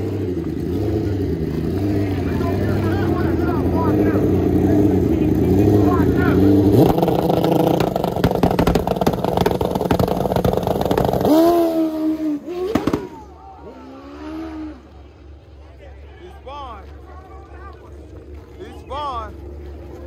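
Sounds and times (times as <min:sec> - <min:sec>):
drag motorcycle revving and racing: 0:00.0 - 0:16.4
spectators shouting: 0:12.7 - 0:15.1.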